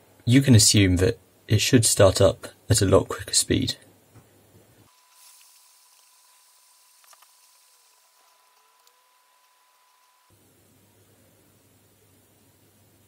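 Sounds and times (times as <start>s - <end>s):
thin steady high tone: 4.9s - 10.4s.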